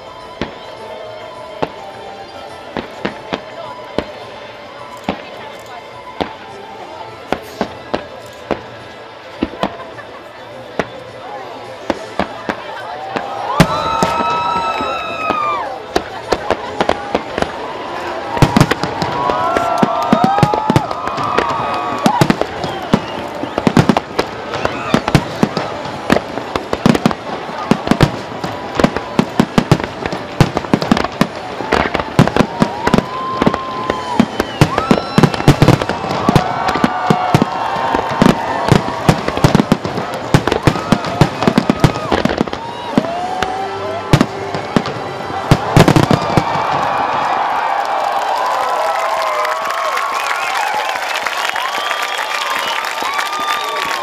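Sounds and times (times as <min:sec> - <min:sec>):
fireworks bangs and crackles: 0:00.0 - 0:54.0
crowd cheering and applauding: 0:12.5 - 0:54.0.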